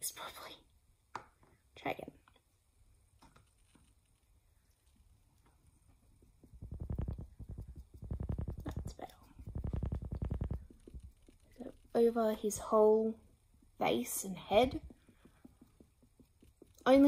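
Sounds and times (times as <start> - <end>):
sponge patting doll head: 5.4 - 17.0.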